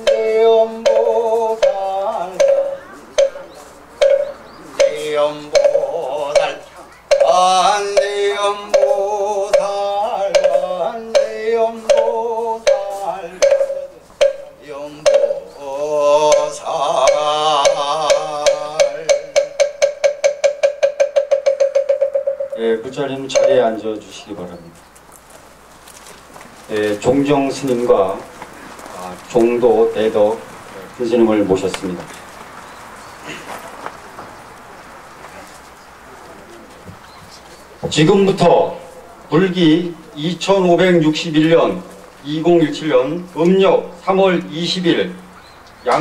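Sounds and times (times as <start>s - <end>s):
man chanting: 0.0s - 3.6s, 4.7s - 19.5s, 26.7s - 32.1s, 37.9s - 46.0s
person speaking: 0.0s - 9.0s, 22.6s - 24.8s
wooden fish strikes: 0.0s - 15.5s, 16.2s - 22.6s, 23.3s - 23.8s
wooden fish knocks speeding up: 4.0s - 8.2s, 16.2s - 22.6s.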